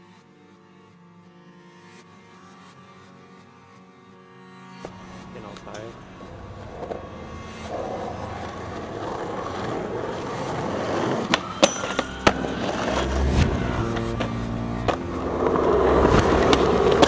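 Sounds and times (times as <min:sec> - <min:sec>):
sharp skateboard clacks: 0:04.8 - 0:17.0
skateboard wheels rolling on asphalt: 0:04.8 - 0:17.0.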